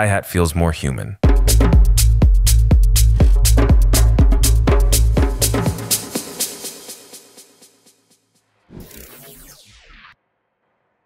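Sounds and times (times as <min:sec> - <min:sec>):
electronic dance music: 0:01.2 - 0:08.2.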